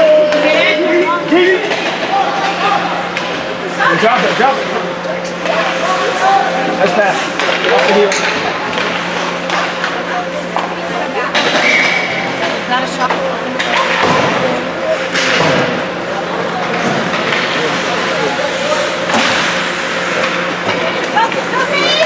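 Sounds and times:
spectators' voices: 0:00.0 - 0:22.0
steady low hum: 0:00.0 - 0:22.0
sticks and puck clacking: 0:00.2 - 0:03.4, 0:05.2 - 0:22.0
skates scraping on ice: 0:16.4 - 0:22.0.

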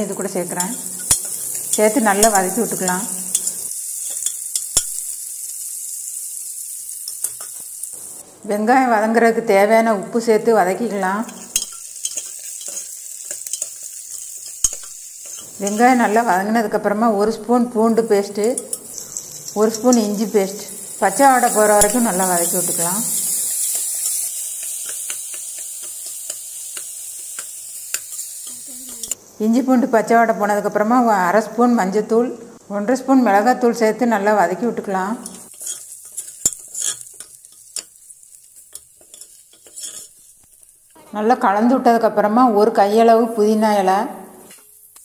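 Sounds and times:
onions sizzling in oil: 0:00.0 - 0:32.2, 0:32.8 - 0:45.0
woman speaking: 0:15.6 - 0:18.6, 0:19.6 - 0:23.1, 0:41.0 - 0:44.2
metal spoon scraping pot: 0:18.4 - 0:20.3, 0:35.2 - 0:37.8, 0:38.7 - 0:40.3.

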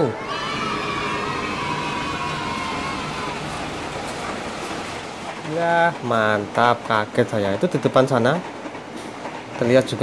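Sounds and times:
rumble of train passing: 0:00.0 - 0:10.0.

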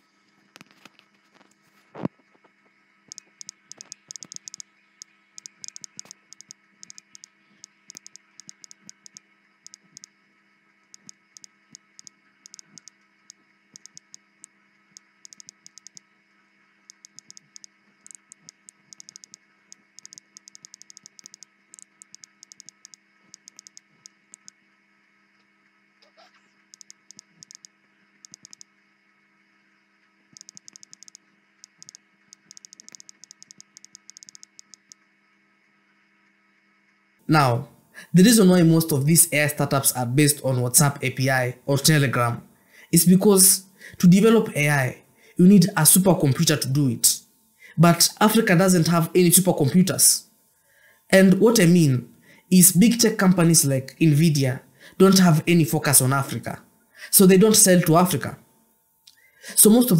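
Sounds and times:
faint electrical hum: 0:00.0 - 0:59.9.

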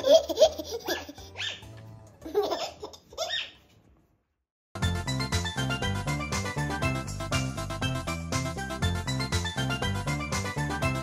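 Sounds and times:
baby laughing: 0:00.0 - 0:03.7
background music with bass line: 0:04.8 - 0:11.0.

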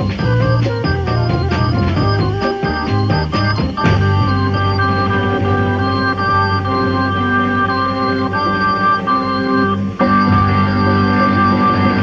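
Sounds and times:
low bass line: 0:00.0 - 0:12.0
organ sustained chords: 0:00.0 - 0:12.0.

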